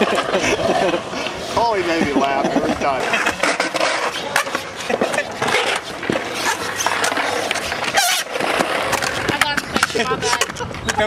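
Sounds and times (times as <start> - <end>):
skateboard clacking on ground: 0.0 - 11.0
skateboard wheels rolling on concrete: 0.0 - 11.0.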